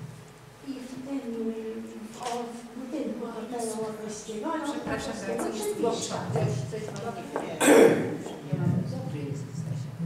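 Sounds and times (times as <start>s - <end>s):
loud cough: 7.6s - 8.1s.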